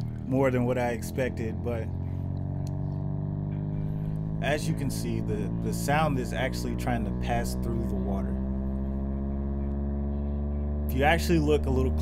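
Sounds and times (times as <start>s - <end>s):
buzzy low bass tone: 0.0s - 12.0s.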